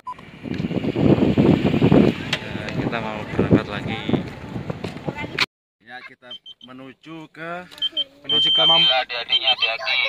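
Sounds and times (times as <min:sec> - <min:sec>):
wind buffeting microphone: 0:00.2 - 0:05.4.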